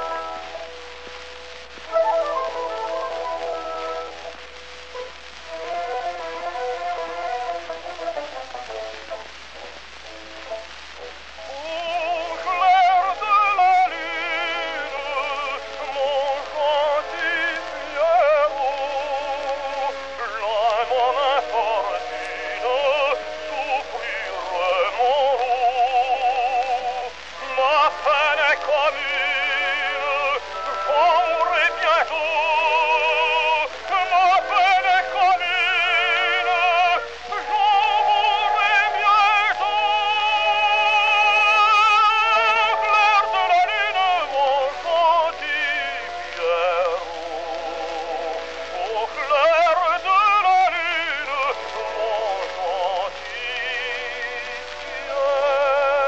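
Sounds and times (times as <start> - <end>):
instrumental accompaniment: 0.0 - 56.0
tenor singing with vibrato: 10.0 - 56.0.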